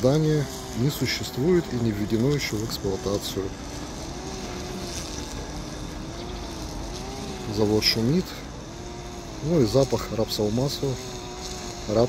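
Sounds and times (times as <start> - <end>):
faint wavering hum: 0.0 - 12.0
industrial drone: 0.0 - 12.0.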